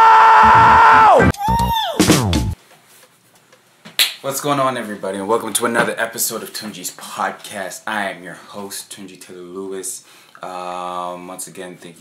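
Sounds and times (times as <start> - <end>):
man yelling: 0.0 - 2.1
man screaming: 0.0 - 2.3.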